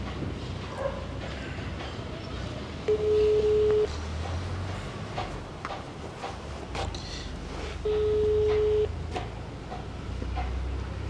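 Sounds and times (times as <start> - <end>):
electronic beep tone: 2.9 - 3.9, 7.9 - 8.9.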